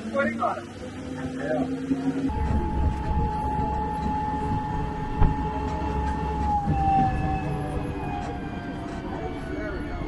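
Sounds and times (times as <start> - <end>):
tram drivetrain whine: 0.0 - 10.0.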